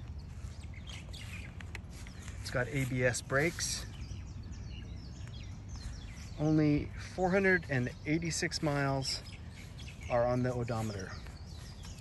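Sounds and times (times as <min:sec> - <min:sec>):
low steady outdoor rumble: 0:00.0 - 0:12.0
small birds chirping: 0:00.0 - 0:12.0.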